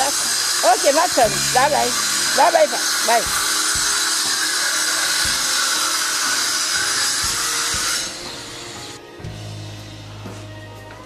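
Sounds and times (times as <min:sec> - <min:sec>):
loud steady hissing: 0:00.0 - 0:10.6.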